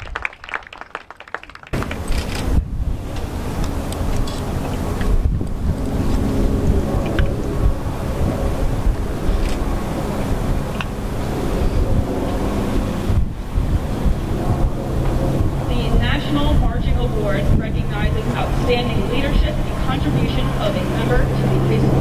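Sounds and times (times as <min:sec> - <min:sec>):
wind rumbling on microphone: 0:01.7 - 0:22.0
steady low hum: 0:01.8 - 0:22.0.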